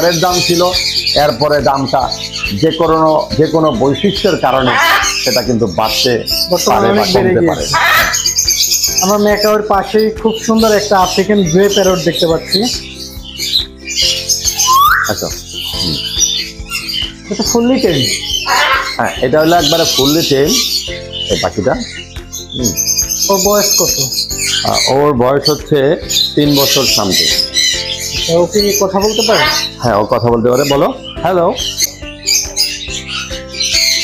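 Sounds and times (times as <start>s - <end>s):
background music: 0.0s - 34.0s
birds chirping and squawking: 0.0s - 34.0s
rising whistle: 14.6s - 15.1s.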